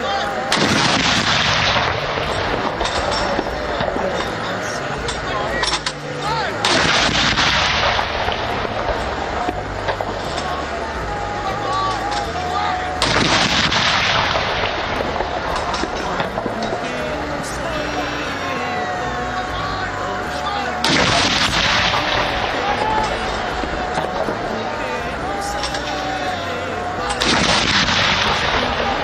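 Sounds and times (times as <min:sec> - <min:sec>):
howitzer firing blast with echo: 0:00.5 - 0:02.9, 0:06.6 - 0:09.0, 0:27.2 - 0:28.7.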